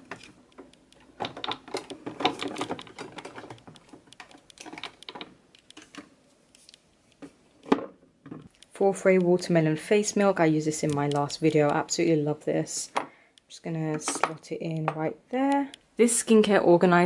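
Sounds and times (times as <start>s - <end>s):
cosmetic bottles clattering: 1.1s - 6.1s.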